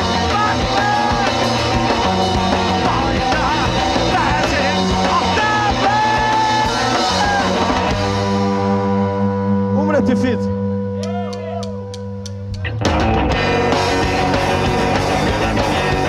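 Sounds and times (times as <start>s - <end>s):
person singing: 0.0s - 7.7s
bass guitar: 0.0s - 16.0s
drums: 0.0s - 16.0s
electric guitars: 0.0s - 16.0s.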